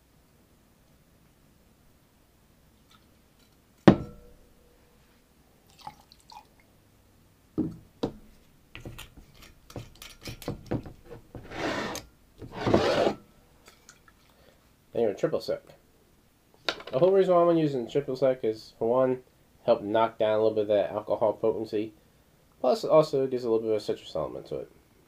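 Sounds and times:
bottle set down knocks: 3.9s - 4.3s
glass clinking: 3.9s - 4.4s.

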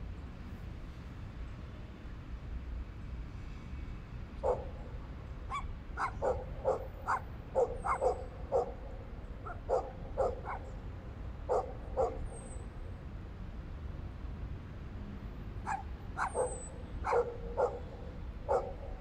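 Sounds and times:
dog barking: 4.4s - 4.8s, 5.5s - 10.8s, 11.5s - 12.3s, 15.6s - 19.0s.

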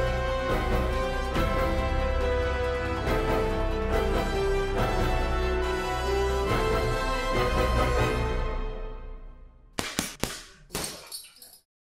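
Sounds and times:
music: 0.0s - 9.8s.

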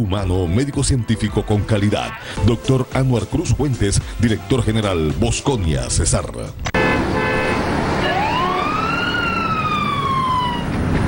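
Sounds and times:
siren-like wail: 7.0s - 11.0s.

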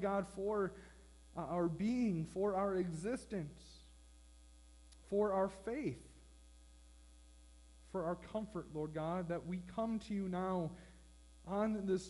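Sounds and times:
man speaking: 0.0s - 4.0s, 5.0s - 6.2s, 7.9s - 12.0s
faint mains hum: 0.0s - 12.0s.

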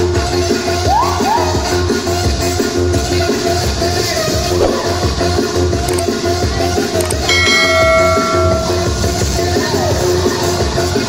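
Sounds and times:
notification bell ding: 7.3s - 9.0s.

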